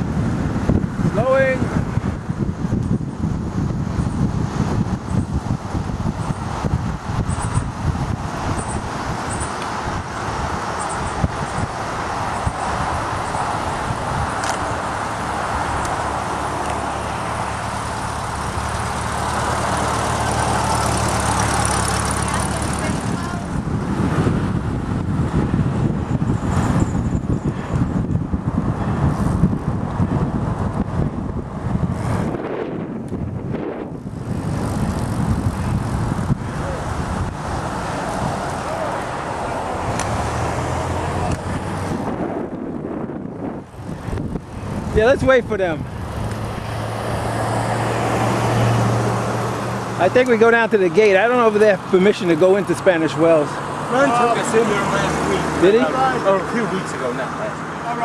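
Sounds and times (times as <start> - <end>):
road traffic noise: 0.0 - 58.0
steady vehicle hum: 0.0 - 58.0
wind rushing over microphone: 0.0 - 58.0.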